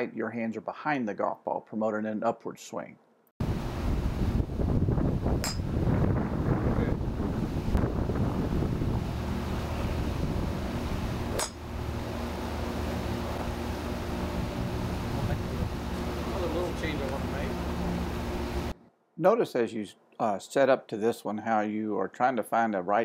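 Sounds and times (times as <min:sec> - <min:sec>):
wind buffeting microphone: 0:03.4 - 0:12.1, 0:14.0 - 0:17.9.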